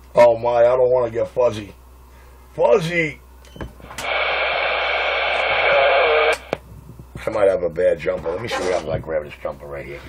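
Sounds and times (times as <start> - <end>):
radio static hiss: 3.8 - 10.0.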